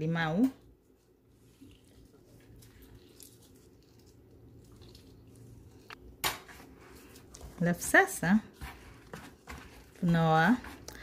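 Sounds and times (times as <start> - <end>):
low steady hum: 0.0 - 11.0
lemon squeezer squishing: 1.3 - 6.1.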